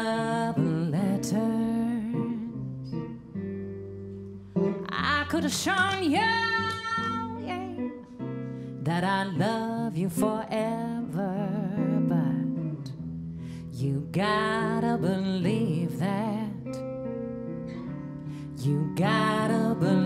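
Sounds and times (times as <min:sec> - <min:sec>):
woman singing slow song: 0:00.0 - 0:03.2, 0:04.6 - 0:17.1, 0:18.0 - 0:20.0
guitar accompaniment: 0:00.0 - 0:20.0.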